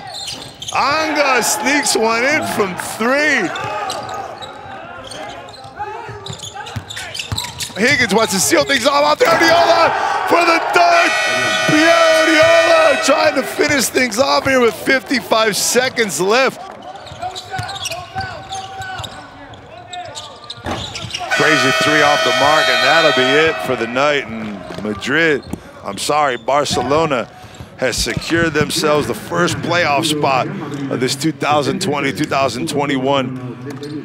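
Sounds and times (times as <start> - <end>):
shoes squeaking on floor: 0.0 - 1.0, 3.4 - 8.6, 16.7 - 28.5
players calling out in a hall: 0.0 - 34.0.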